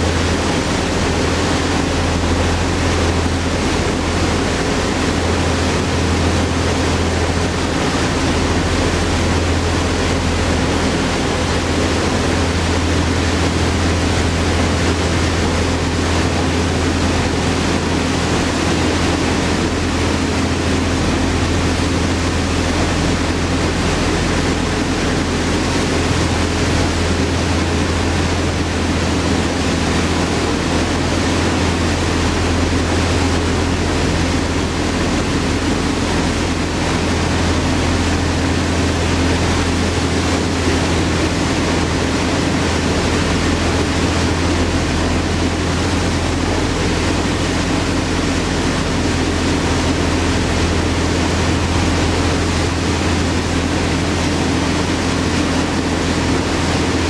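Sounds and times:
boat engines droning: 0.0 - 57.0
churning wake rushing: 0.0 - 57.0
wind: 0.0 - 57.0.

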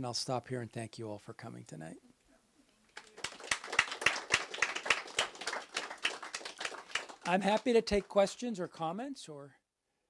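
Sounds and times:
audience applauding: 3.0 - 8.3.

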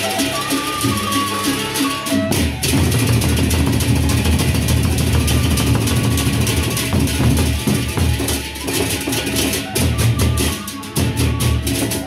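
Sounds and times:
cymbals clashing: 0.0 - 12.0
barrel drums beaten with sticks: 2.1 - 12.0.

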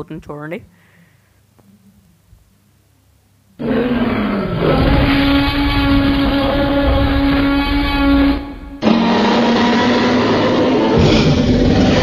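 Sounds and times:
dinosaur roar: 3.6 - 12.0
deep rumble: 3.7 - 12.0.

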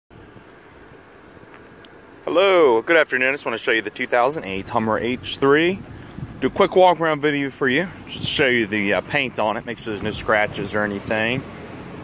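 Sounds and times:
faint background rumble and hiss: 0.2 - 12.0.

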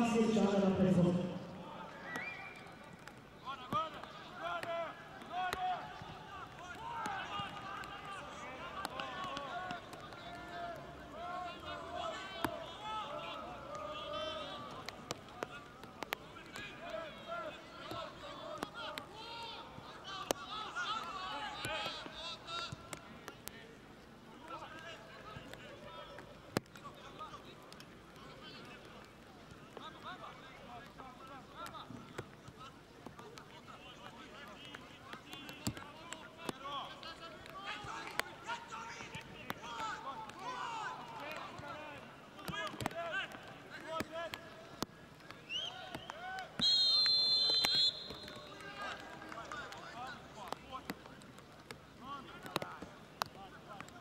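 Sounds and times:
spectators and players talking: 0.0 - 54.0
loud steady whistle blast: 46.6 - 48.5.

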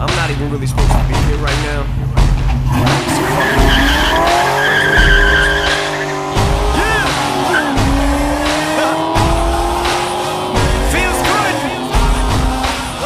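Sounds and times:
car engine accelerating: 2.0 - 13.0
tires squealing: 2.6 - 13.0.

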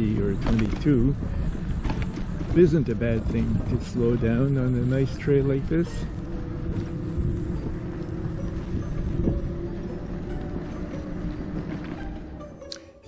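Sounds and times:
bike tyre and wind rumble: 0.0 - 13.0.

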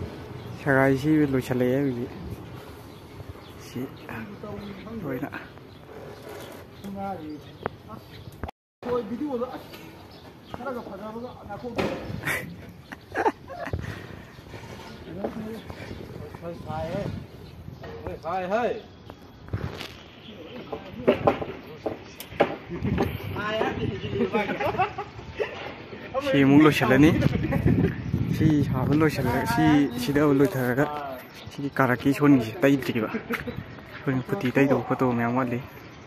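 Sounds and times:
people talking and calling out: 3.3 - 36.0
sharp knocks: 11.7 - 12.2, 20.7 - 23.8
people talking: 26.2 - 33.5.

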